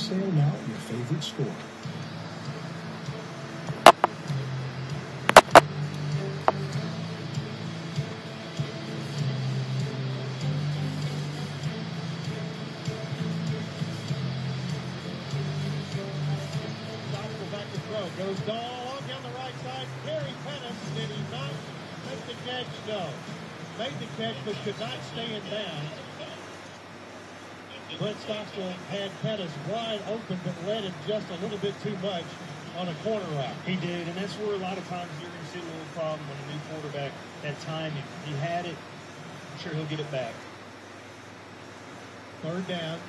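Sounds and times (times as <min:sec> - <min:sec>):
music from a television: 0:00.0 - 0:43.0
sharp clicks: 0:03.9 - 0:04.2, 0:05.3 - 0:06.6.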